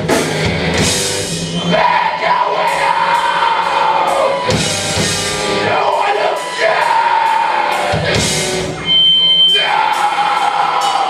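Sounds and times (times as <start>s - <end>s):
bass guitar sustained notes: 0.0s - 11.0s
distorted electric guitar: 0.0s - 11.0s.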